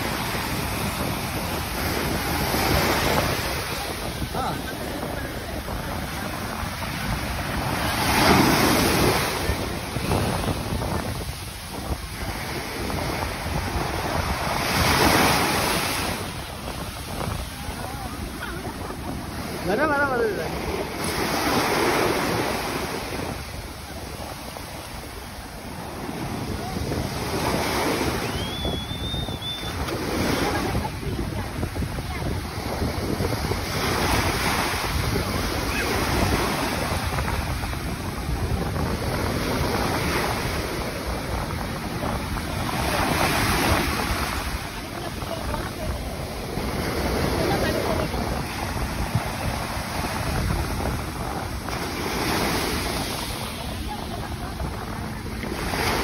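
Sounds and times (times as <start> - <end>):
sea waves breaking over rocks: 0.0 - 56.0
wind buffeting microphone: 0.0 - 56.0
short high whistle: 28.2 - 29.8.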